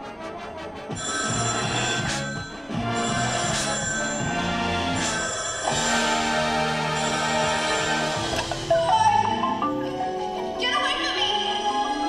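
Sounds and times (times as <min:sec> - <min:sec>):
marching band playing: 0:01.8 - 0:10.0.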